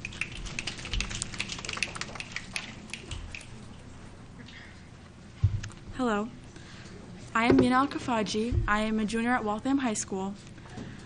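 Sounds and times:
people clapping: 0.0s - 3.5s.

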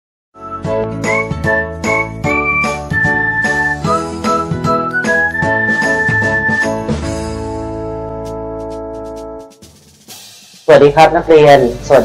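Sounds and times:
upbeat jingle music: 0.4s - 11.6s.

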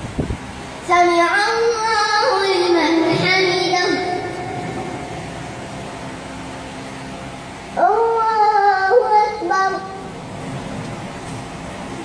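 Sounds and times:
microphone system hiss and hum: 0.0s - 12.0s
echo of boy chanting: 0.8s - 4.7s, 7.8s - 10.1s.

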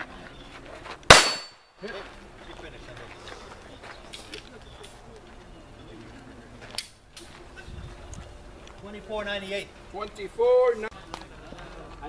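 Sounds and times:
sharp crack: 1.1s - 1.6s.

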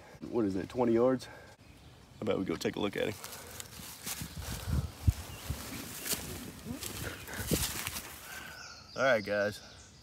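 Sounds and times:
rustling of leafy suit: 3.0s - 8.5s.

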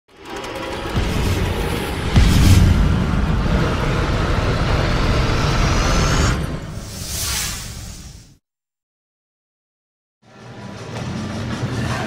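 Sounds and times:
cinematic intro music: 0.1s - 8.4s
low heavy hits: 0.8s - 6.8s.

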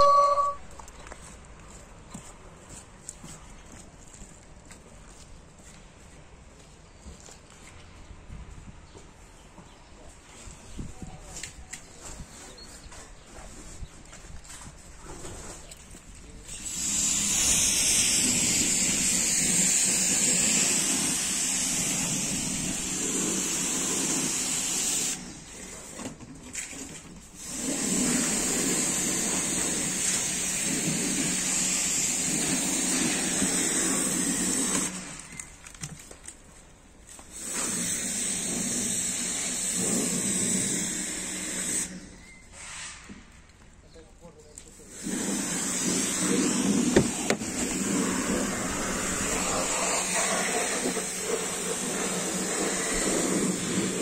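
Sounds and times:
footsteps on gravelly dirt: 0.7s - 8.7s
loud steady hiss: 16.5s - 25.7s, 27.4s - 35.3s, 37.2s - 43.3s, 44.8s - 54.0s.

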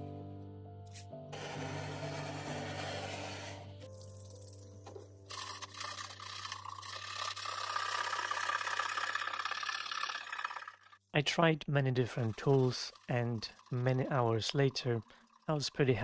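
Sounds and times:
background music: 0.0s - 7.4s.

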